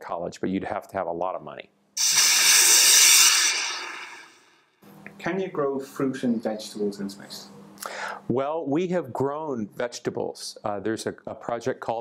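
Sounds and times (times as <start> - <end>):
rush of hissing noise: 2.0 - 4.5.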